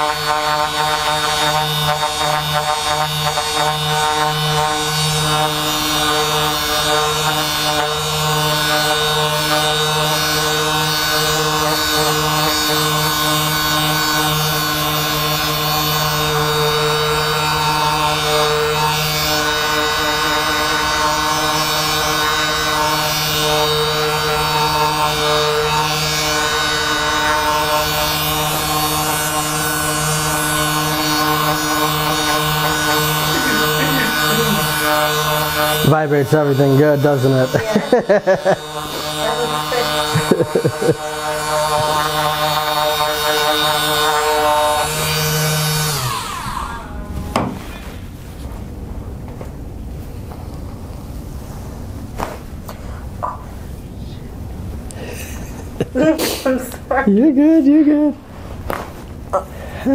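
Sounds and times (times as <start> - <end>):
massage gun motor buzzing: 0.0 - 48.2.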